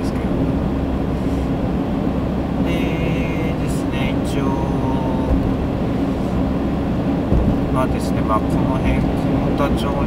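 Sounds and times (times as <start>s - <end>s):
car driving rumble from inside: 0.0s - 10.0s.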